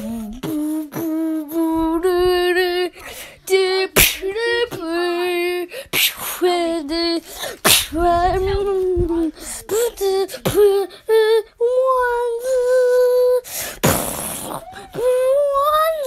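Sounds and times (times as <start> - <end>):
beatbox mouth percussion: 0.0 - 1.2, 13.8 - 15.1
person humming held notes: 0.0 - 2.8.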